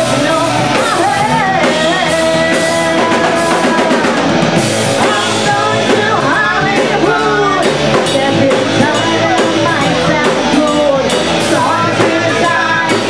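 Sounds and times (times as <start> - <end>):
drum kit: 0.0 - 13.0
electric guitars: 0.0 - 13.0
person singing: 0.0 - 13.0.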